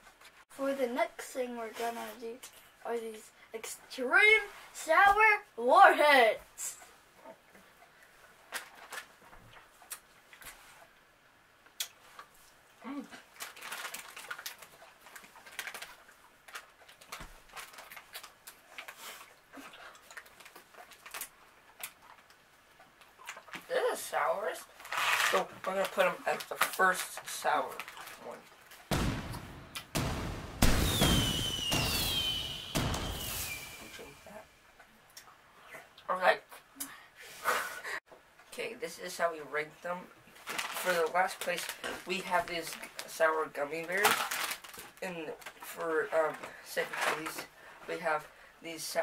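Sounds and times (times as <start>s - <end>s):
plastic candy wrapper crinkling: 13.3s - 19.0s, 20.0s - 21.3s, 24.8s - 28.3s, 40.4s - 43.2s, 43.8s - 47.4s
sudden booms: 28.9s - 34.2s
whistling tone gliding downward: 30.8s - 34.2s.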